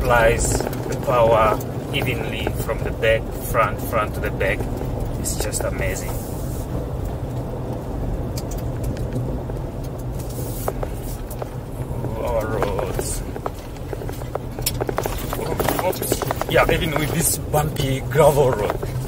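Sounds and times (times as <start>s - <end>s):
tyres and engine rumbling on gravel: 0.0s - 19.0s.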